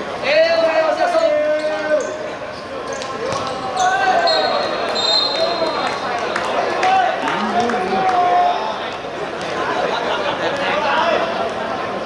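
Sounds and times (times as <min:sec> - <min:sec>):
referee's whistle long blast: 0:03.8 - 0:05.7.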